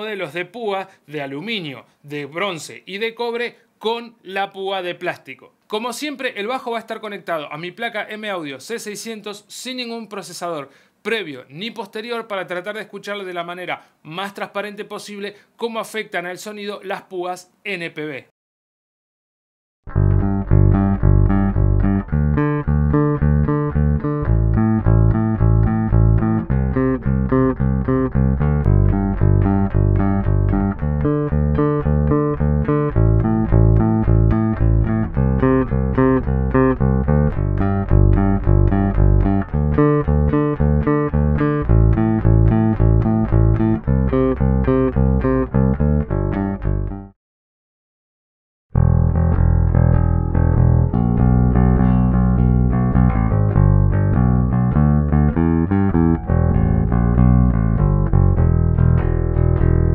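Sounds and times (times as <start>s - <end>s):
electric bass picked riff: 19.8s - 47.1s, 48.7s - 59.9s.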